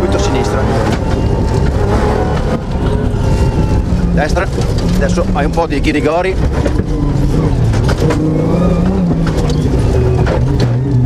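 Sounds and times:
car engine running at speed: 0.0 - 11.0
low rumble of car on dirt: 0.0 - 11.0.

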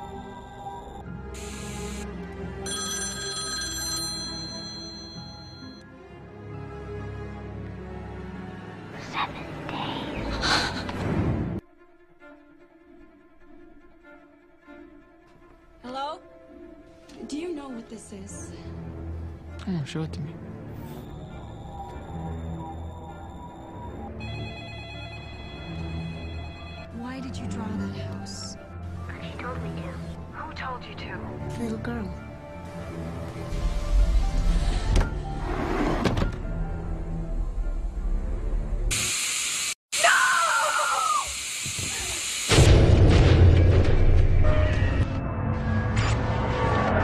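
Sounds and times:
dark horror music: 0.0 - 3.2, 4.4 - 38.9, 42.5 - 47.0
telephone ringing electronically: 2.6 - 5.8, 21.6 - 27.0.

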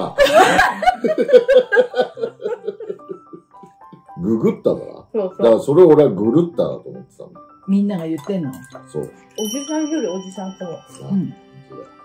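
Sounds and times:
light background music: 0.0 - 12.0
glass and tableware clinking: 7.9 - 11.6.

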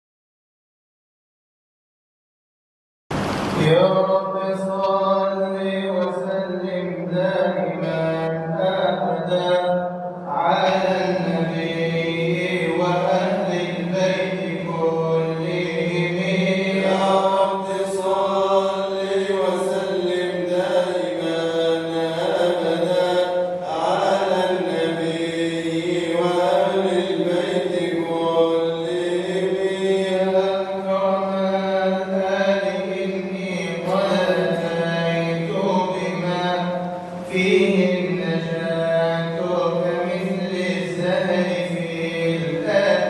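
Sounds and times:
low drone: 3.1 - 43.0
man chanting into a microphone: 3.6 - 43.0.

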